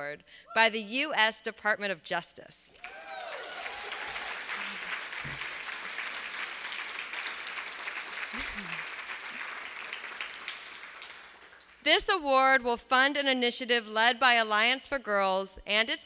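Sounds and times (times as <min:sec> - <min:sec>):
audience applauding: 0:02.8 - 0:11.8.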